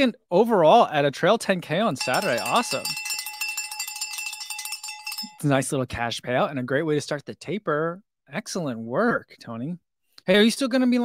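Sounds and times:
bell ringing with rapid rattle: 2.0s - 5.6s.

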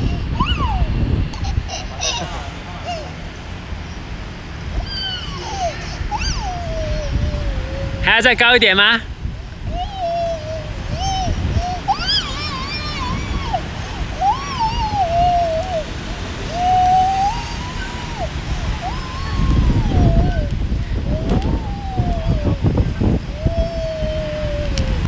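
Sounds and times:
swing chains squealing: 4.8s - 7.4s, 9.8s - 15.9s.

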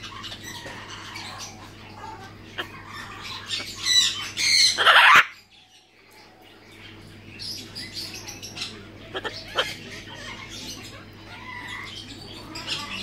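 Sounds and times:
macaw squawking: 0.0s - 5.4s, 8.1s - 13.0s.

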